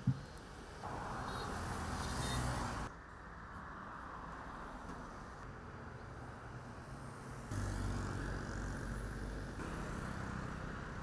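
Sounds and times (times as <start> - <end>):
vehicle passing on highway: 3.6 - 11.0.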